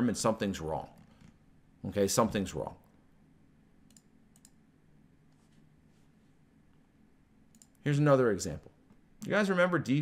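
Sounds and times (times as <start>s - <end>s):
man speaking: 0.0s - 1.0s, 1.8s - 2.9s, 7.8s - 10.0s
faint low hum: 0.0s - 10.0s
faint sharp clicks: 7.5s - 7.8s.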